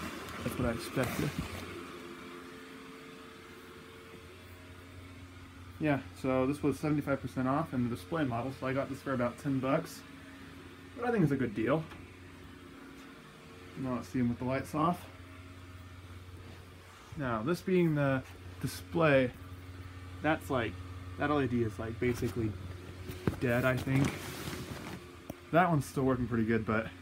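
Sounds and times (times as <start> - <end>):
small blower fan humming: 0.0 - 27.0.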